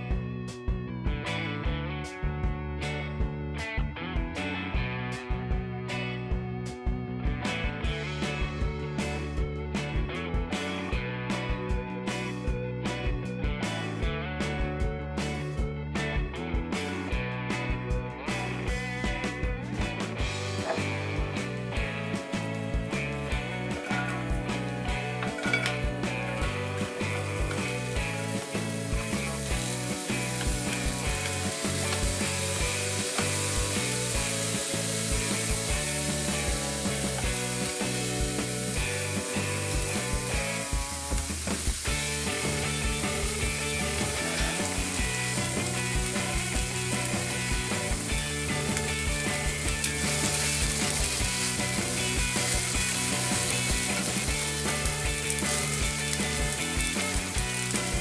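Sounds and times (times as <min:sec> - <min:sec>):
onions sizzling in hot oil: 0:20.6 - 0:58.0.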